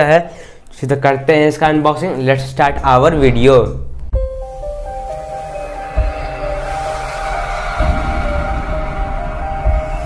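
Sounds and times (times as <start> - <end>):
held synth tones: 4.2 - 10.0
deep boom: 5.8 - 10.0.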